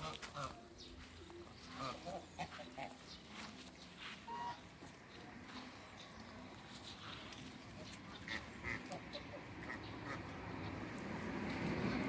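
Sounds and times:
ducks calling softly: 0.0s - 10.8s.

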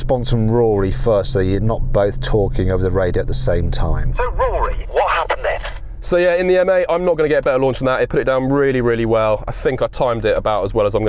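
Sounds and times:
steady low hum: 0.0s - 11.0s
man talking over two-way radio: 4.1s - 5.8s.

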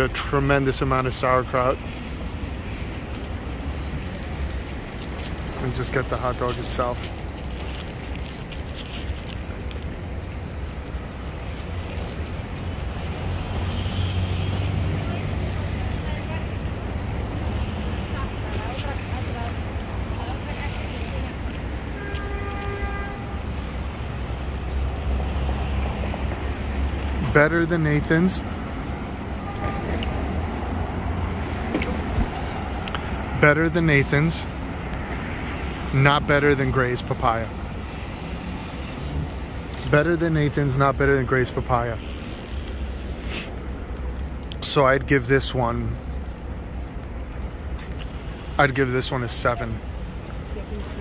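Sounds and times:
road traffic rumble: 0.0s - 51.0s
vehicle passing: 10.4s - 22.0s.

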